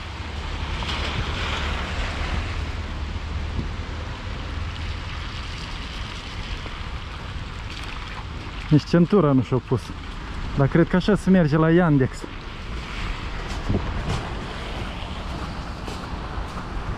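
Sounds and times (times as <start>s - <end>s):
car tyres hissing on wet road: 0.0s - 7.6s
wind rumble on microphone: 0.0s - 16.9s.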